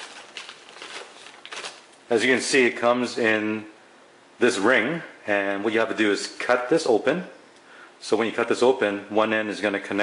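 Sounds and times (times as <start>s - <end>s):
plastic bag crinkling: 0.0s - 2.2s.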